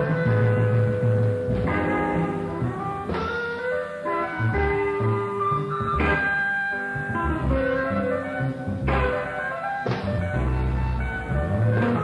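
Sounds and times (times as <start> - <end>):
electric guitar melody notes: 0.0 - 12.0.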